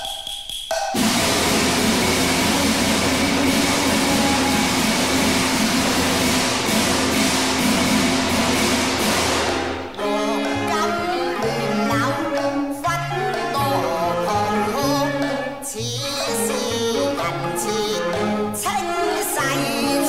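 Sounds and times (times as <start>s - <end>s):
opera percussion playing: 0.0s - 20.0s
stringed instruments melody: 1.0s - 20.0s.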